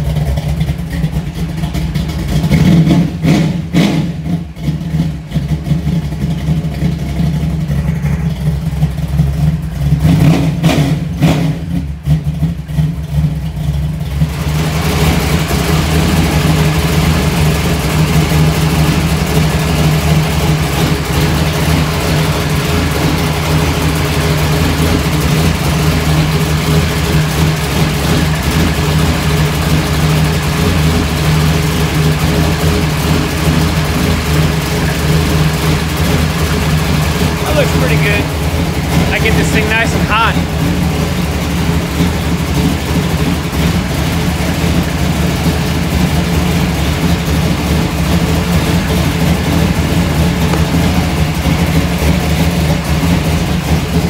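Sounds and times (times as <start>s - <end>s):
engine throttle blips: 0.0s - 54.0s
race car engine idling: 0.0s - 54.0s.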